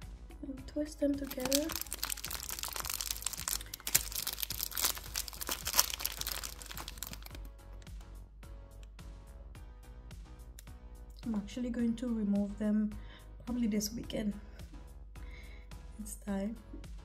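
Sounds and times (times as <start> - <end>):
soft background music: 0.0 - 17.0
hair twists crackling and rustling: 1.2 - 7.5.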